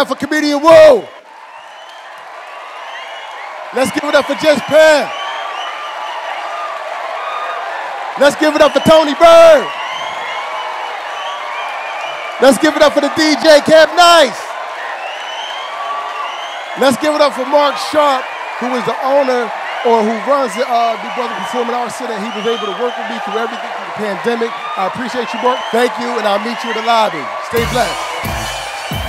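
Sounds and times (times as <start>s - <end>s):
audience applauding: 0.0s - 29.0s
audience cheering: 0.0s - 29.0s.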